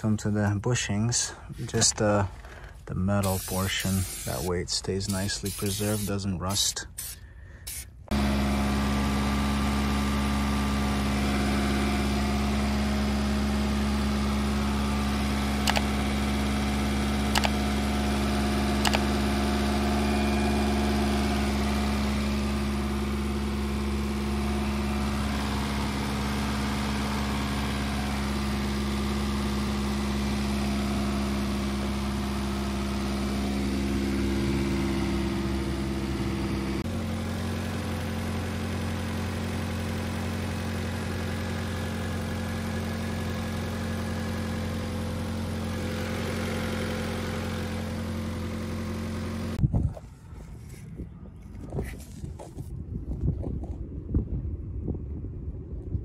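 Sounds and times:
car engine idling: 0:00.0 - 0:50.8.

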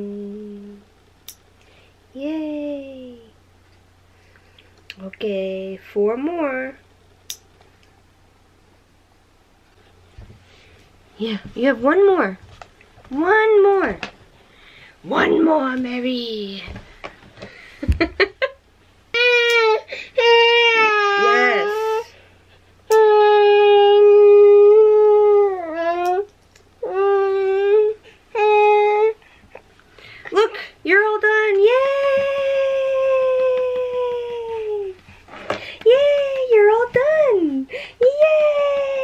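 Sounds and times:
baby crying: 0:19.2 - 0:22.1.

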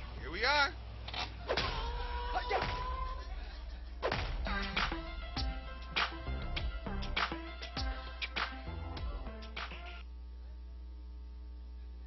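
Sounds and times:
music over loudspeakers: 0:02.4 - 0:10.0.

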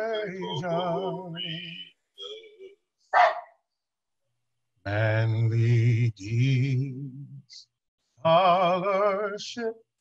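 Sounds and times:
dog barking: 0:03.1 - 0:03.6.

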